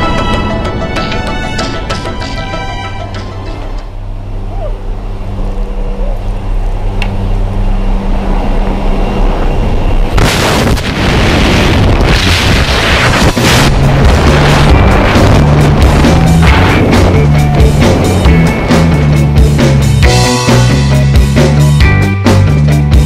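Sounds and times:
background music: 0.0s - 4.2s, 13.2s - 23.0s
low aircraft drone: 0.0s - 23.0s
wind buffeting microphone: 8.3s - 19.8s.

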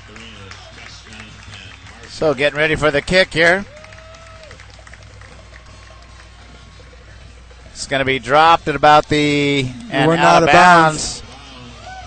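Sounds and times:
faint stadium background noise: 0.0s - 12.0s
low electrical hum: 1.4s - 12.0s.

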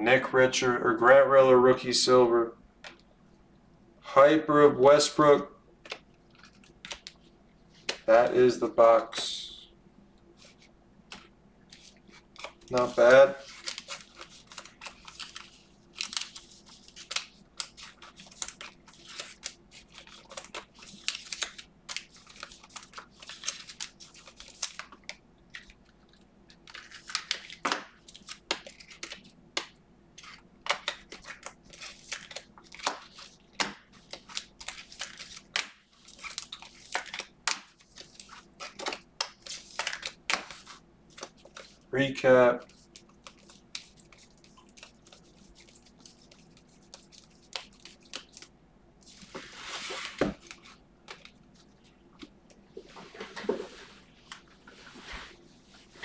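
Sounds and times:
plastic sleeves crinkling: 10.4s - 29.4s, 30.2s - 52.3s.

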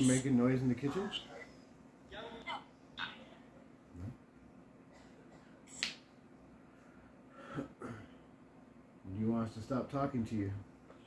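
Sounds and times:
faint steady hum: 0.0s - 11.0s
sharp snap: 5.7s - 6.1s.

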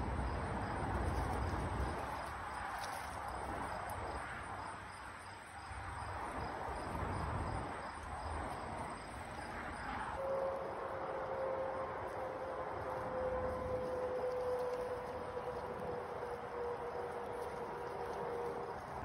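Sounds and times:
insects chirping: 0.3s - 19.0s
low outdoor rumble: 6.0s - 19.0s.

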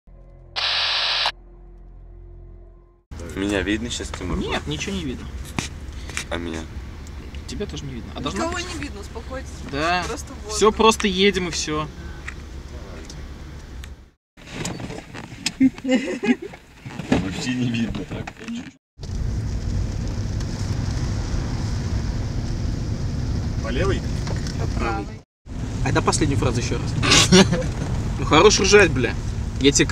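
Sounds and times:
loud burst of noise: 0.6s - 1.3s
car engine and road rumble: 3.1s - 29.9s.

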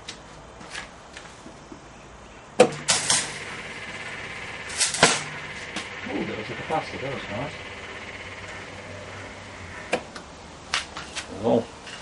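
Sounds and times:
electrical hum with high whine: 2.3s - 11.8s
capacitor bursting pop: 2.6s - 8.8s
loud electrical snap: 2.6s - 10.9s.

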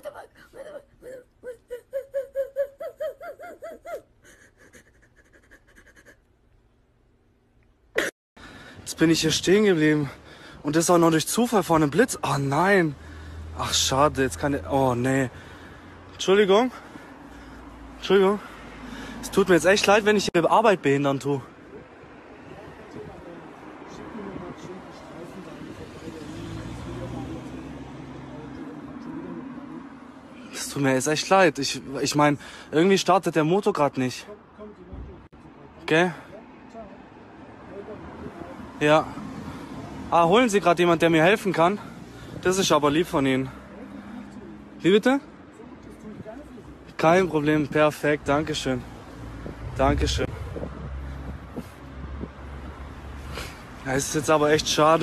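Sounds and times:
woman sobbing: 0.0s - 6.3s
vehicle engine hum: 41.9s - 55.0s.

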